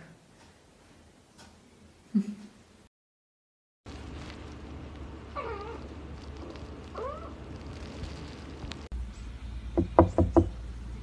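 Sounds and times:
kitten mewing: 6.9s - 7.4s.

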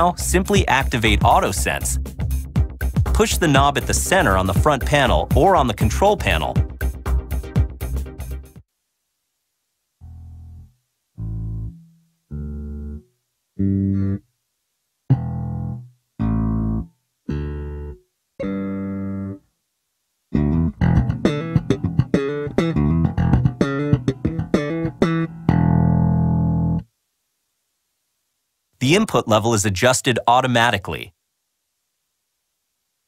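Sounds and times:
electric bass guitar notes: 0.0s - 8.5s, 10.0s - 14.2s, 15.1s - 19.4s, 20.3s - 26.8s
fast bass guitar riff: 0.0s - 8.6s, 10.0s - 14.2s, 15.1s - 19.4s, 20.3s - 26.8s.

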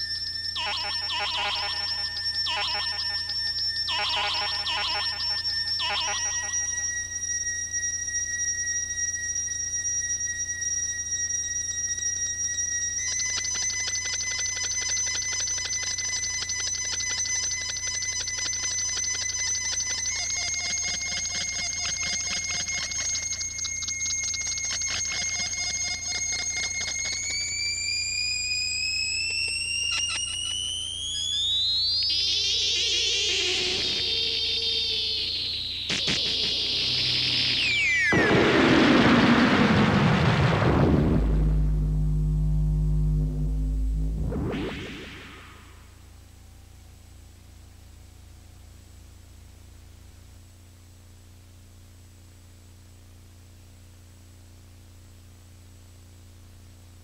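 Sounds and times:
fast electronic flutter: 0.0s - 17.5s, 18.1s - 46.6s
high whistle-like electronic tone: 0.0s - 49.3s
low steady hum: 33.8s - 57.0s.

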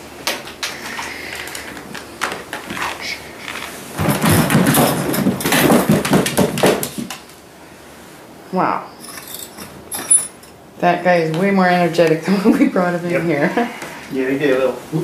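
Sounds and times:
plastic pet carrier clattering: 2.2s - 7.2s
wire grate door rattling: 4.0s - 6.9s.

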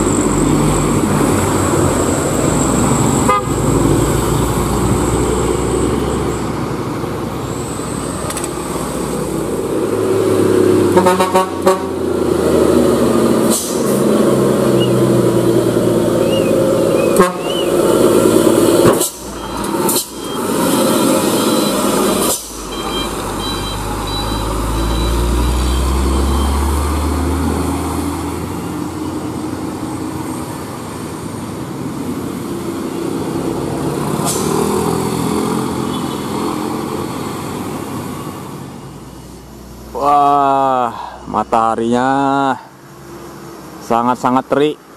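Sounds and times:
deep truck engine rumble: 0.0s - 43.9s
vehicles passing with engines rumbling: 0.0s - 44.9s
short horn toot: 16.2s - 17.8s.

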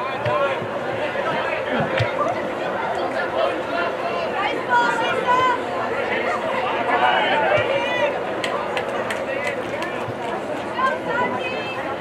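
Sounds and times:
overlapping chatter: 0.0s - 12.0s
voices shouting and calling out: 0.0s - 12.0s.

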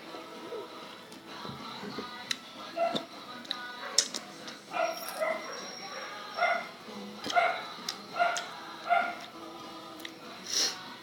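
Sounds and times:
dog barking: 2.8s - 3.1s, 4.7s - 6.7s, 7.3s - 9.3s.

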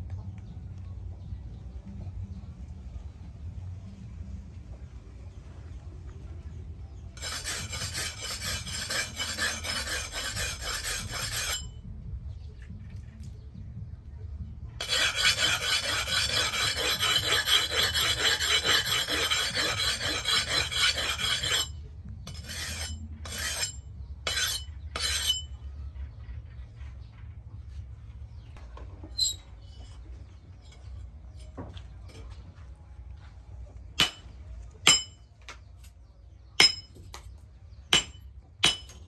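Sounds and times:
blade scraping on sharpening stone: 7.2s - 11.8s, 14.8s - 25.6s, 34.9s - 35.2s, 36.6s - 36.9s, 38.0s - 39.0s.

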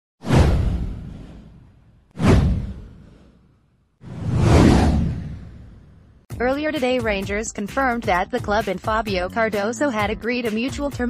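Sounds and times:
whoosh with deep boom: 0.2s - 6.3s.

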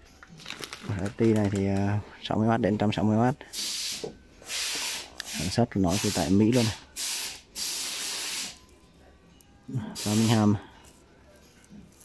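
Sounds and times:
plastic film rustling: 0.2s - 1.7s.

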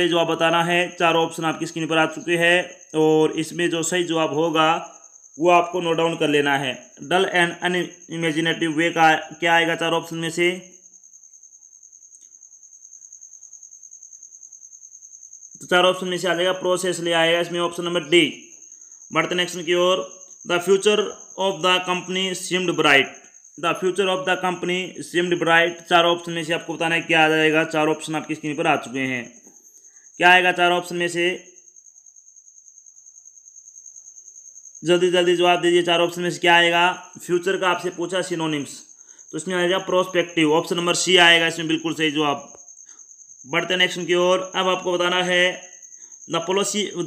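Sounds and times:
man speaking: 0.0s - 10.7s, 15.6s - 18.4s, 19.1s - 29.4s, 30.2s - 31.4s, 34.8s - 42.5s, 43.5s - 45.6s, 46.3s - 47.0s
cricket chirping: 0.0s - 47.0s
insect trill: 0.0s - 47.0s.

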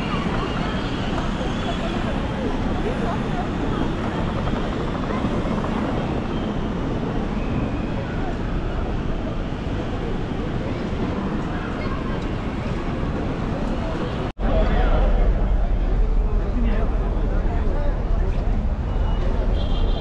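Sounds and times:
indistinct chatter of passers-by: 0.0s - 20.0s
low city rumble: 0.0s - 20.0s.

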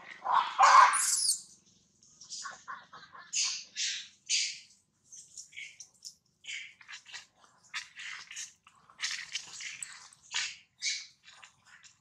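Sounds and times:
baby monkey crying and squealing: 0.7s - 1.4s.

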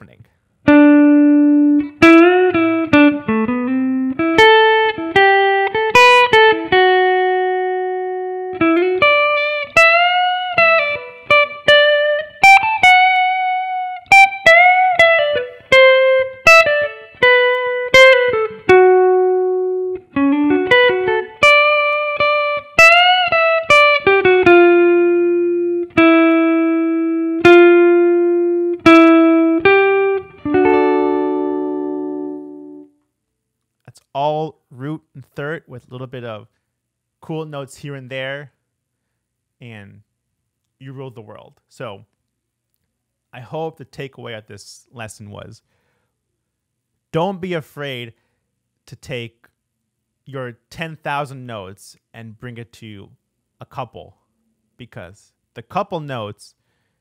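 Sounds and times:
electric guitar lead line: 0.7s - 32.9s.

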